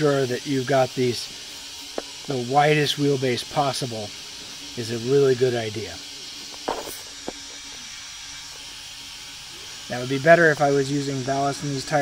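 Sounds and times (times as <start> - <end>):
steady background hiss: 0.0 - 7.8.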